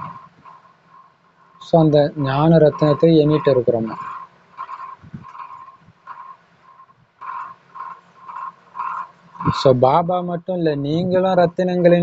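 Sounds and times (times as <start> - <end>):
animal calling: 2.2 - 6.4.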